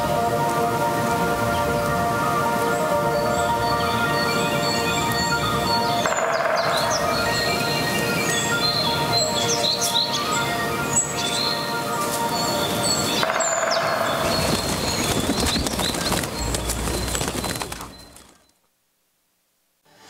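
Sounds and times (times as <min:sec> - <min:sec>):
sustained ambient music chord: 0:00.0 - 0:17.2
high chirps and whistles: 0:03.2 - 0:18.4.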